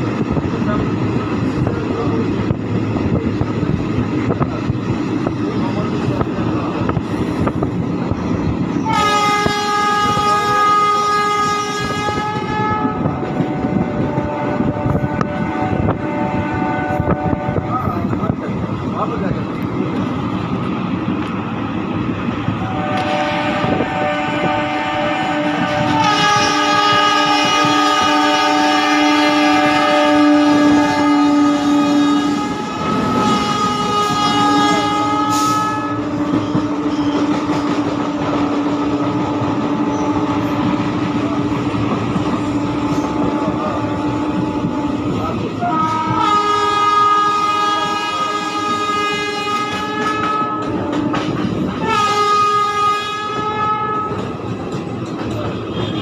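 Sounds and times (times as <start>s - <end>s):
train running noise: 0.0s - 56.0s
train horn blasts: 8.8s - 18.1s, 22.6s - 37.9s, 45.6s - 54.4s, 55.6s - 56.0s.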